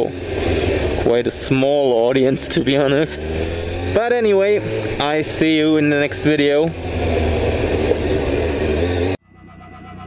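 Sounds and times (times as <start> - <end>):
motorcycle engine hum: 0.0 - 10.0
music with held tones: 9.2 - 10.0.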